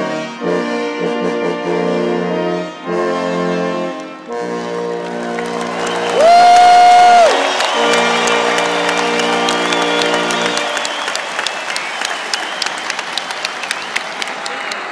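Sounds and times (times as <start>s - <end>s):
brass section holding a chord: 0.0s - 6.1s, 7.2s - 11.1s
crowd applause and cheering: 4.0s - 14.9s
spectator cheering: 5.0s - 14.9s.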